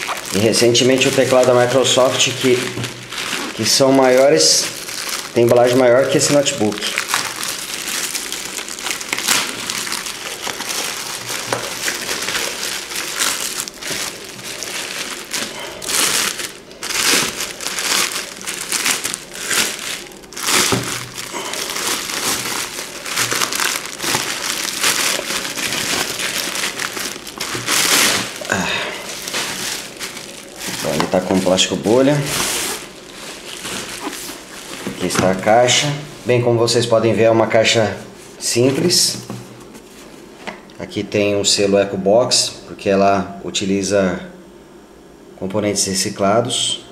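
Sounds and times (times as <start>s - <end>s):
plastic bag and bubble wrap crinkling: 0.0s - 40.3s.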